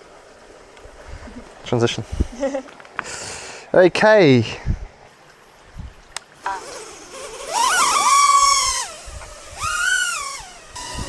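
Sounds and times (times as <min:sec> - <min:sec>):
quadcopter motors whining: 0:06.4 - 0:11.0.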